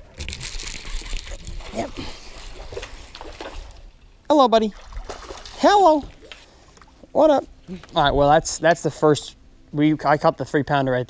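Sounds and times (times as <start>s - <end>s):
fish splashing in water: 0.2s - 4.0s, 4.7s - 6.6s.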